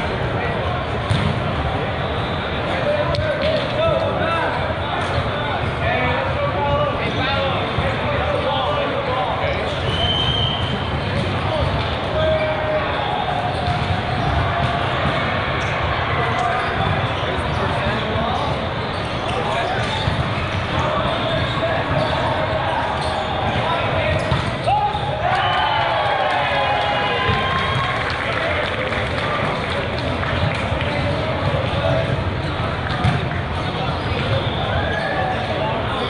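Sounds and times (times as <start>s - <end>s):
many voices talking: 0.0s - 36.0s
volleyballs struck and bouncing: 0.9s - 1.8s, 10.4s - 12.4s, 13.3s - 18.7s, 19.3s - 25.3s, 27.2s - 28.0s, 29.0s - 34.6s
short high whistle: 9.9s - 10.7s.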